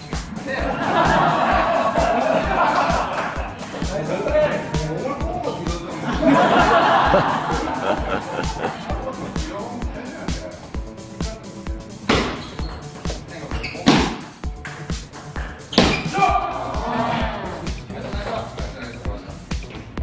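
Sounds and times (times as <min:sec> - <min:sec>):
spectator chatter: 0:00.0 - 0:11.9, 0:16.2 - 0:19.5
dance music with steady beat: 0:00.0 - 0:20.0
table tennis ball strikes: 0:12.1 - 0:12.8, 0:13.9 - 0:16.1.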